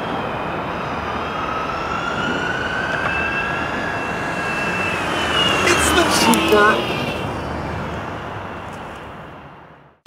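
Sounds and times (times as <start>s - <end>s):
steady rumbling noise: 0.0s - 9.9s.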